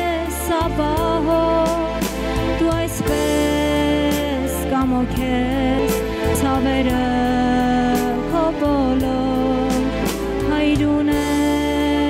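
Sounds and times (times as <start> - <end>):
instrumental backing with bass: 0.0 - 12.0
woman singing: 0.0 - 12.0.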